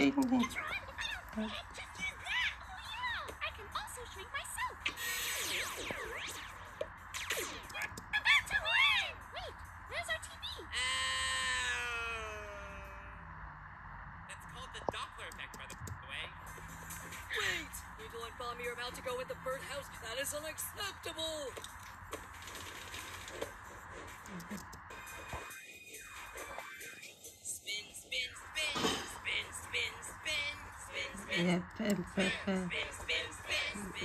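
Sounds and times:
background music: 0.0s - 34.0s
cartoon sound effects: 4.7s - 6.6s, 7.2s - 9.5s
cartoon character voices: 7.8s - 13.2s, 28.7s - 34.0s.

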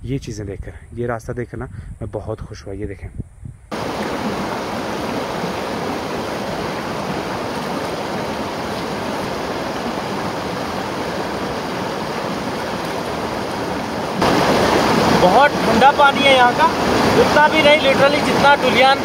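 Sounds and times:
stream running over stones: 3.7s - 19.0s.

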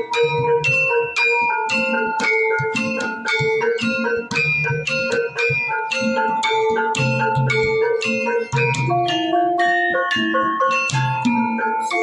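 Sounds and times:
gamelan playing: 0.0s - 12.0s.

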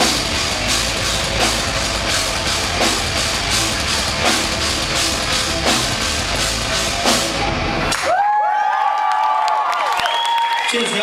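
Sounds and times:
live rock band playing: 0.0s - 8.0s
audience cheering and whooping: 7.7s - 11.0s.

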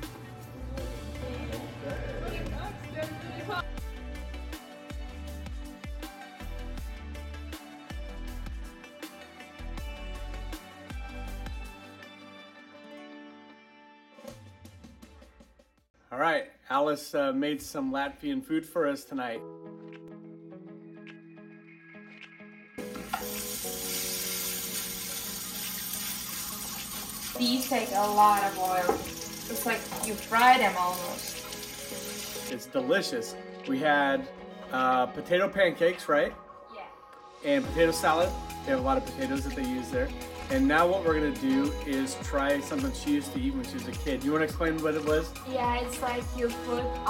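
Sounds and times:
music with sliding bass: 0.0s - 8.8s, 37.7s - 47.0s
quiet background music: 0.0s - 14.6s, 17.1s - 47.0s
pancakes sizzling in oil: 22.9s - 32.5s.

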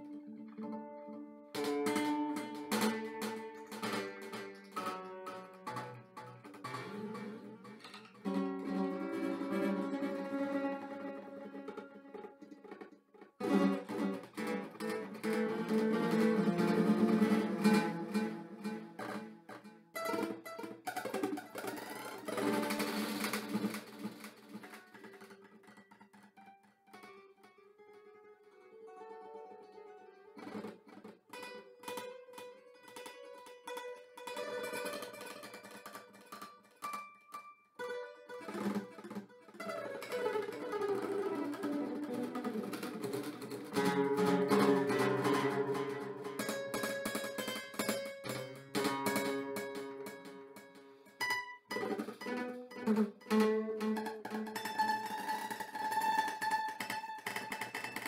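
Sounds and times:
acoustic guitar plucked: 0.0s - 58.0s.

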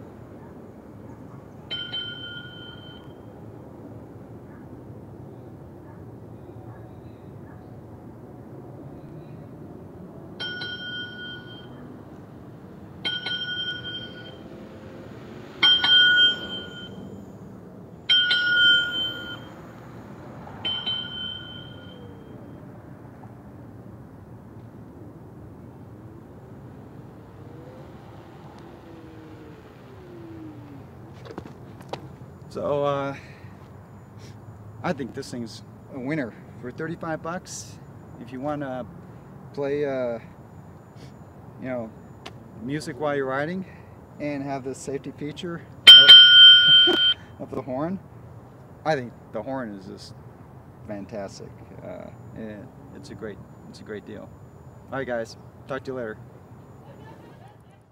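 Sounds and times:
two-tone electronic dings: 1.7s - 3.2s, 10.4s - 11.7s, 13.0s - 14.5s, 15.6s - 17.0s, 18.1s - 19.6s, 20.6s - 22.0s, 45.9s - 47.3s.

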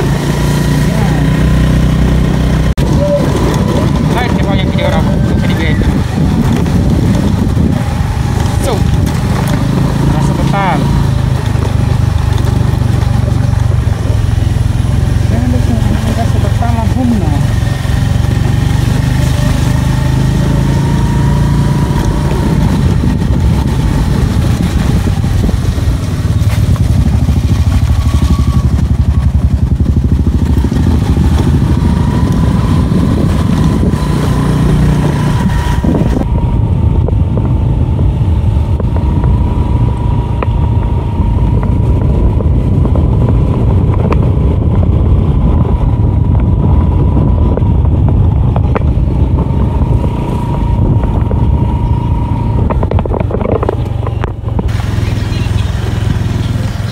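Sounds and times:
motorcycle engine rumble: 0.0s - 56.9s.

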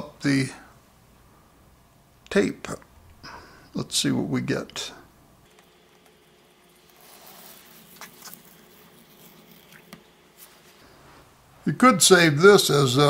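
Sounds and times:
tape peeling with faint rustling: 5.5s - 10.8s.

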